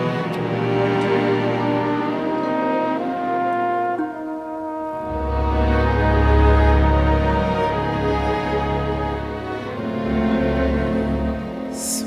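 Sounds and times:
slow ballad melody notes: 0:00.0 - 0:12.0.

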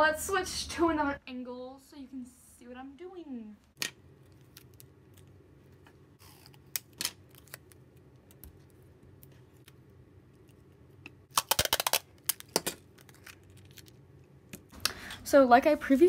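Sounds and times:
sticky tape crackling: 0:03.8 - 0:14.8.

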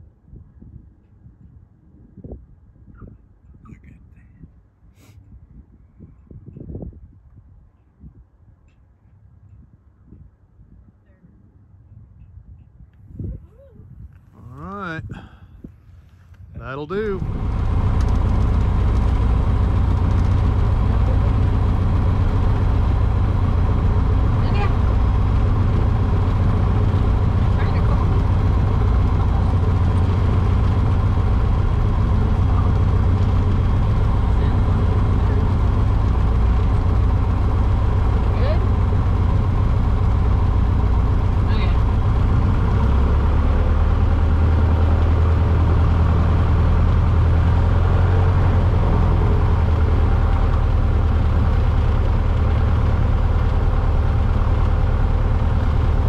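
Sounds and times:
airplane engine drone in cabin: 0:14.5 - 0:44.0.

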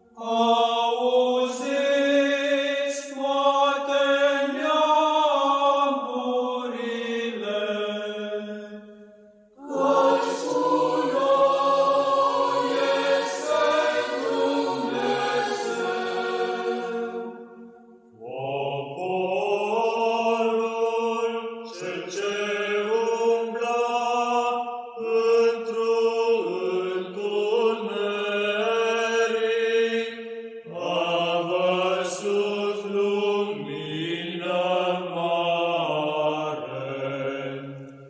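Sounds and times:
church chant singing: 0:00.0 - 0:38.0.

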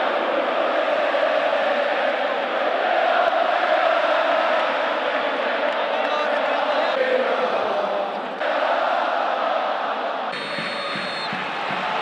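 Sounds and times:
stadium crowd chanting: 0:00.0 - 0:12.0
steady high whistle tone: 0:10.4 - 0:11.4.

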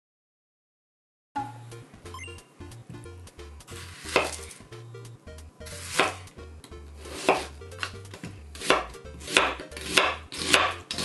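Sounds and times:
knife cutting onion on board: 0:03.6 - 0:04.8, 0:05.6 - 0:11.0.

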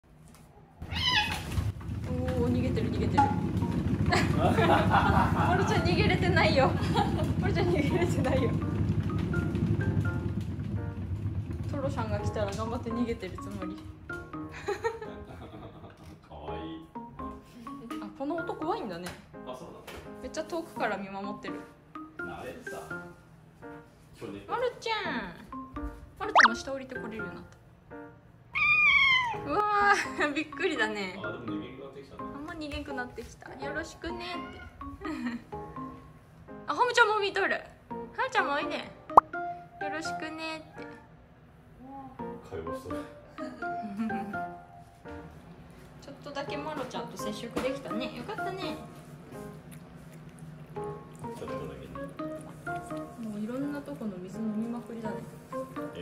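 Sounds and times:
cat meowing: 0:00.8 - 0:01.6, 0:28.5 - 0:29.5, 0:34.3 - 0:34.9
exercise wheel rolling rumble: 0:01.4 - 0:14.2.

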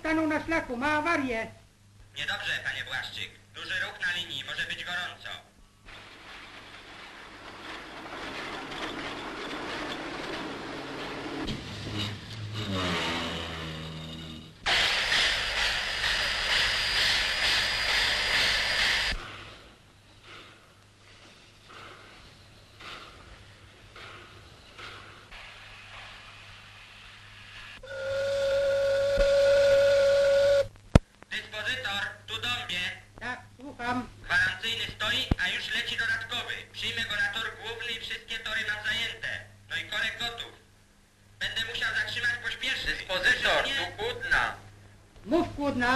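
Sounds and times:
rush of steam: 0:14.6 - 0:30.6
steady whistle blast: 0:27.8 - 0:30.7
steam whistle falling in pitch: 0:27.8 - 0:30.7.

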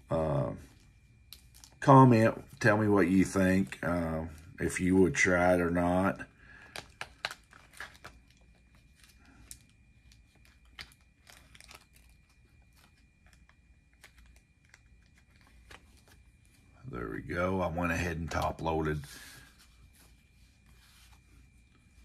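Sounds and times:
plastic sleeve crinkling: 0:00.2 - 0:16.9.

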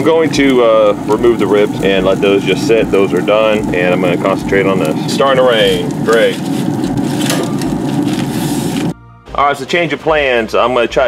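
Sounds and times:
vegetables sizzling in oil: 0:00.0 - 0:08.9.

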